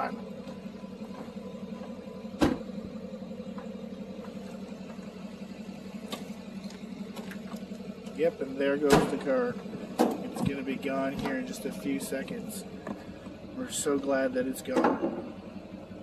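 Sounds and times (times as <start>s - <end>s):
car engine running: 0.0s - 16.0s.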